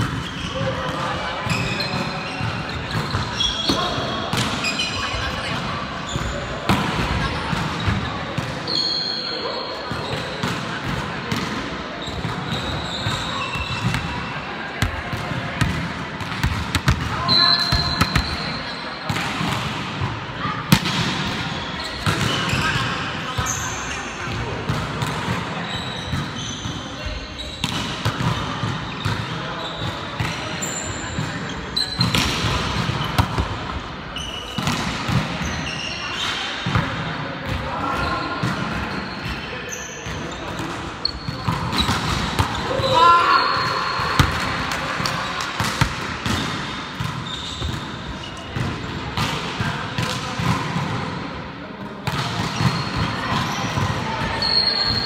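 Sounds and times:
volleyball slaps: 2.9s - 4.6s, 20.7s - 22.8s, 32.0s - 33.6s, 34.5s - 35.5s, 44.0s - 47.9s.

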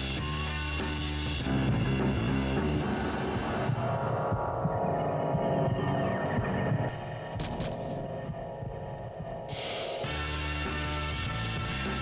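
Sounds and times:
droning advert soundtrack: 1.4s - 11.8s.

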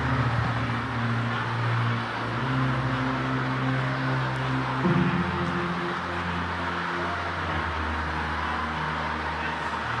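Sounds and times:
low music chords: 0.0s - 10.0s.

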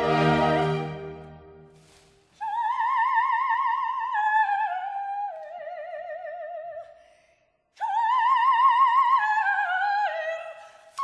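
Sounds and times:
orchestral chord: 0.0s - 1.4s
operatic soprano singing: 2.4s - 7.0s, 7.8s - 11.0s.

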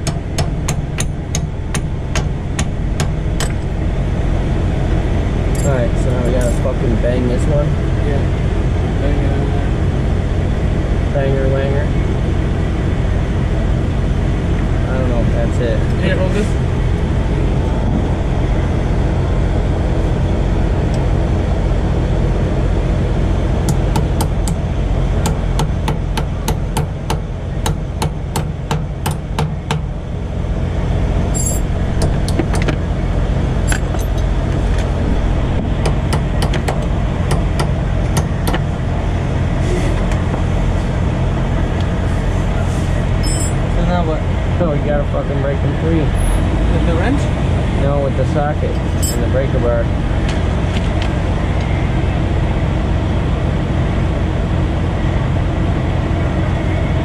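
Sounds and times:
low engine drone: 0.0s - 57.0s.

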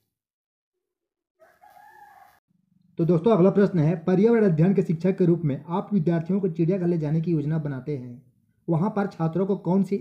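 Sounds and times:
faint rooster crow: 1.4s - 2.4s.

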